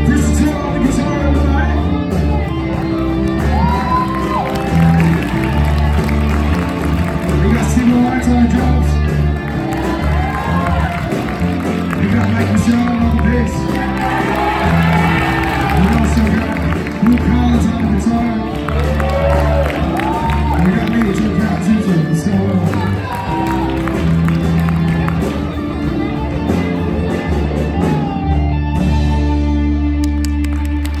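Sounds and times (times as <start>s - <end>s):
man singing: 0.0s - 2.0s
bass guitar: 0.0s - 31.0s
drum kit: 0.0s - 31.0s
electric guitars: 0.0s - 31.0s.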